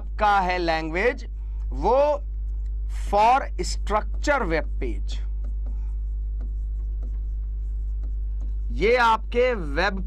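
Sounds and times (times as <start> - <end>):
steady low hum: 0.0 - 10.0
chalk scratching on chalkboard: 3.1 - 9.7.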